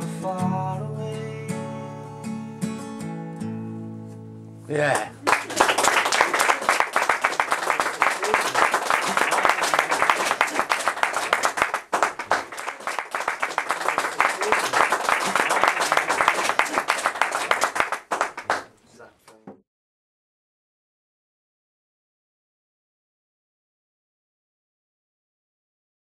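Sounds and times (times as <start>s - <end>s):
audience applauding: 4.9s - 18.7s.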